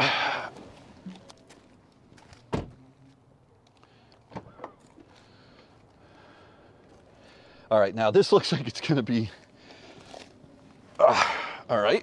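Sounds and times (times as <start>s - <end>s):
car door shutting: 2.3s - 2.8s.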